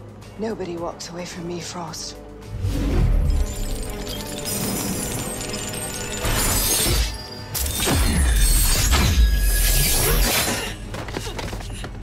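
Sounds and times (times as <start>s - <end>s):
dramatic score music: 0.0s - 12.0s.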